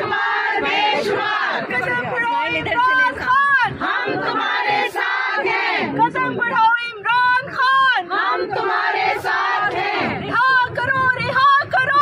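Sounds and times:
women shouting a slogan: 0.0 - 12.0.

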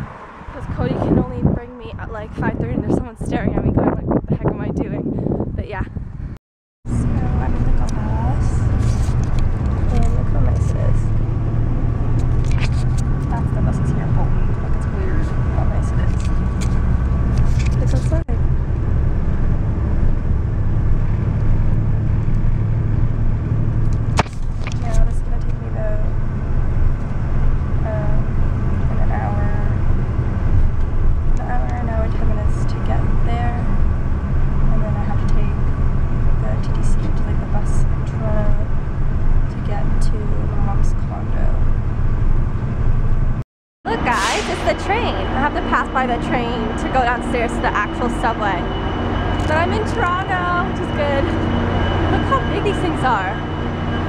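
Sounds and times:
bus rumble from inside: 0.0 - 54.0
faint steady whine: 43.9 - 54.0.

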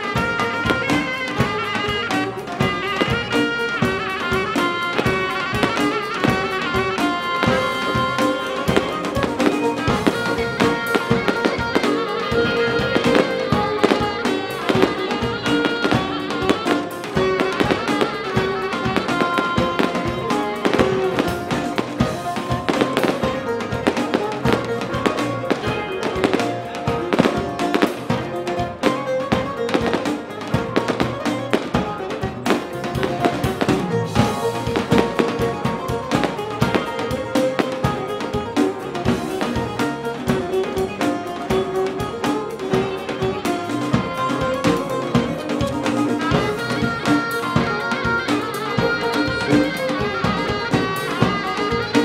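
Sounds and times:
live band music: 0.0 - 52.0
sharp percussive strokes: 0.0 - 52.0.

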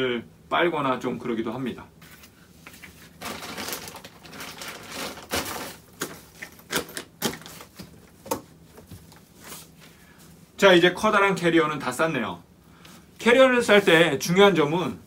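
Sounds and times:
fabric and packaging rustling: 2.0 - 9.8.

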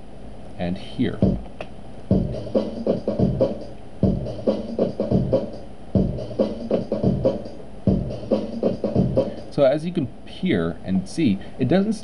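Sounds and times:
sampled drum loop: 1.0 - 10.0.

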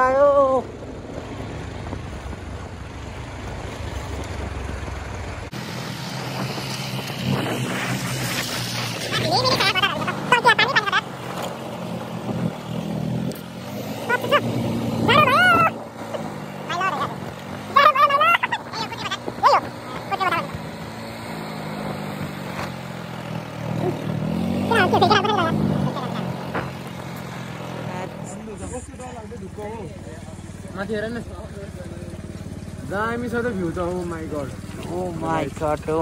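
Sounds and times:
vehicle engine revving: 0.0 - 36.0
people calling out: 9.0 - 11.1, 14.0 - 20.6, 23.7 - 26.7.

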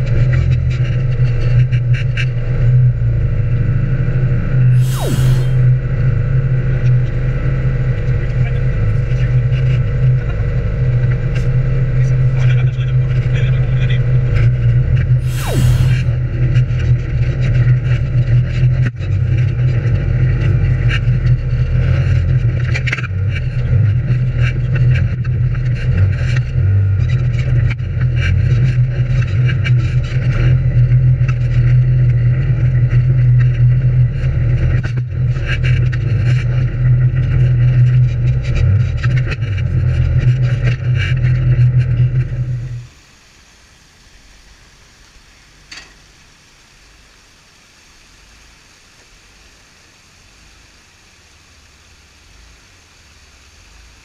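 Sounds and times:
off-road vehicle engine running: 0.0 - 43.0.

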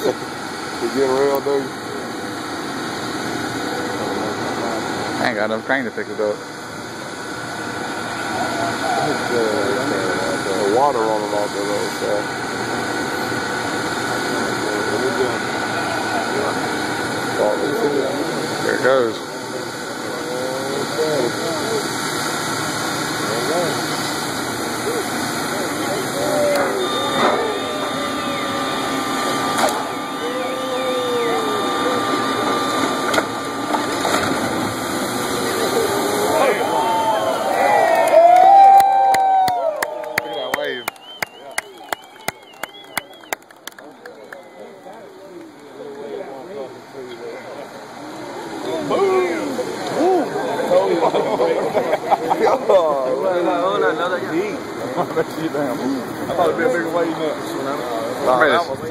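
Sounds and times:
diesel engines running: 0.0 - 58.9
faint voices: 3.1 - 38.3, 39.7 - 58.9
hull sliding rushing noise: 23.9 - 37.6.

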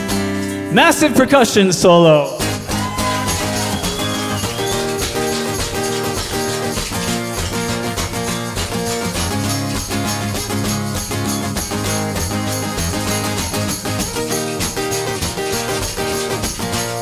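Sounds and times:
acoustic guitar strumming: 0.0 - 17.0
tambourine: 1.9 - 17.0
maracas shaking: 2.2 - 17.0.

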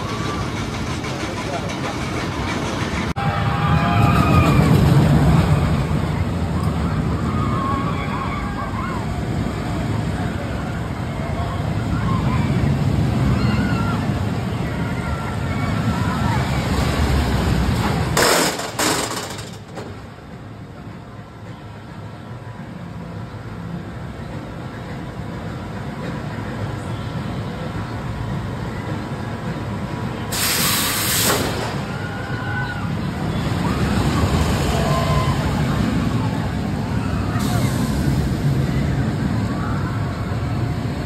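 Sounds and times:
roller coaster rumbling on track: 0.0 - 41.0
riders screaming: 3.2 - 5.9, 6.7 - 9.2, 11.4 - 16.9, 31.7 - 37.8
loud hisses: 30.3 - 31.7.

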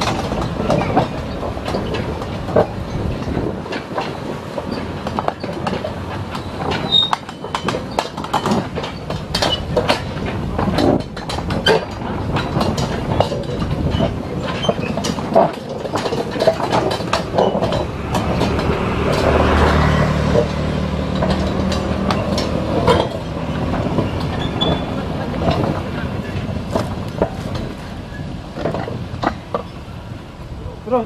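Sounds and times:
metallic knocks and clanks: 0.0 - 30.0
rail wagons rolling: 0.0 - 31.0.

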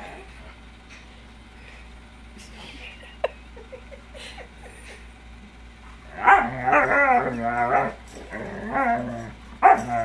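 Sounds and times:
dog barking and yowling: 6.1 - 10.0.

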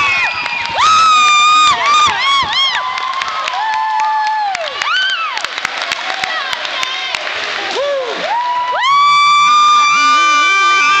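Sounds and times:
spectators cheering: 0.0 - 11.0
high-pitched held scream: 8.8 - 11.0.

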